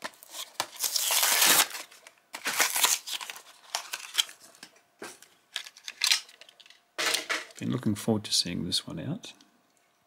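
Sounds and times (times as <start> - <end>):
plastic crinkling: 0.0 - 4.7
cardboard tearing: 0.1 - 4.3.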